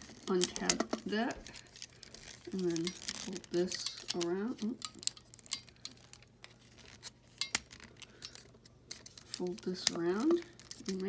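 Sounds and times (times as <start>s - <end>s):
plastic toy parts clicking: 2.6s - 6.6s.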